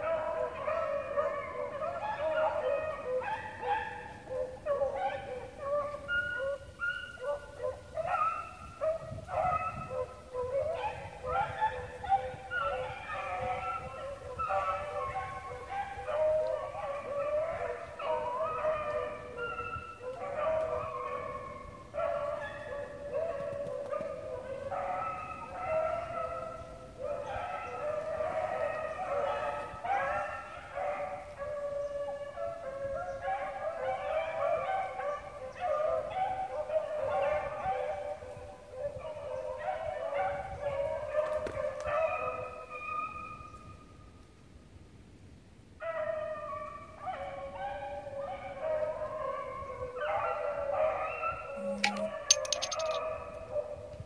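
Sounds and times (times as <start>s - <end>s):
hounds baying and howling: 0.0s - 44.0s, 45.8s - 54.0s.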